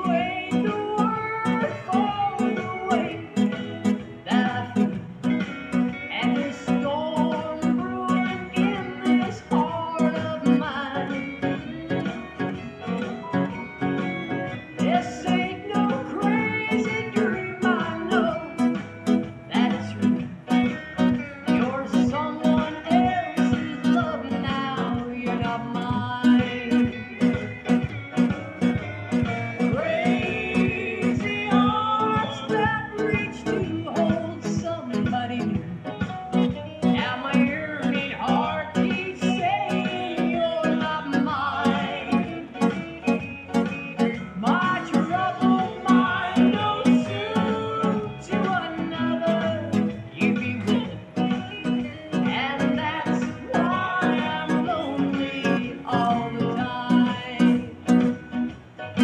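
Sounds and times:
fingerpicked classical guitar: 0.0 - 59.0.

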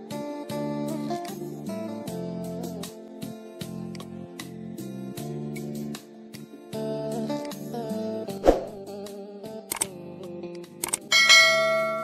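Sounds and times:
soft guitar music: 0.0 - 12.0
bright bell ding: 11.1 - 12.0.

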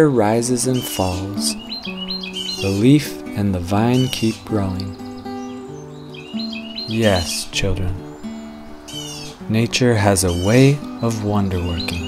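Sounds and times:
bird chirping: 0.0 - 12.0
soft background music: 0.0 - 12.0.

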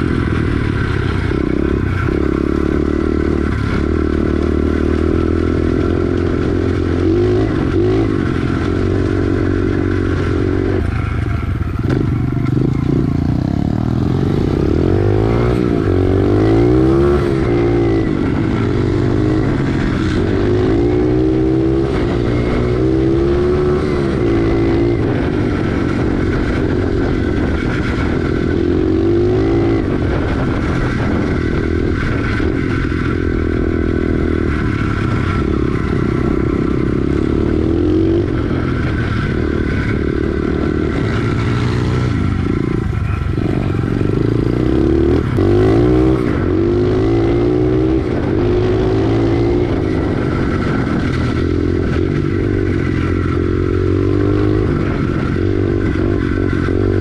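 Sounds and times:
motorbike engine revving: 0.0 - 57.0.

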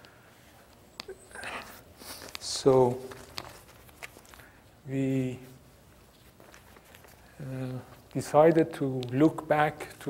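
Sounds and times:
man speaking: 2.4 - 3.2, 4.8 - 5.6, 7.4 - 10.0.

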